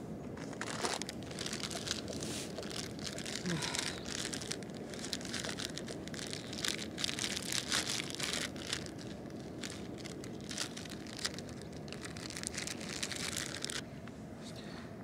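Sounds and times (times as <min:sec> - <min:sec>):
low background noise: 0:00.0 - 0:15.0
plastic bag crinkling: 0:00.4 - 0:13.8.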